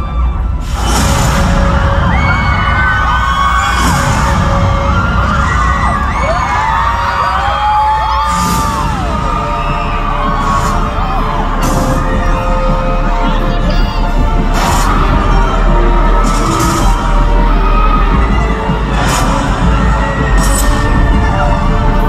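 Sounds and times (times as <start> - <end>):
crowd screaming: 0.0 - 22.0
loud concert music with heavy bass: 0.0 - 22.0.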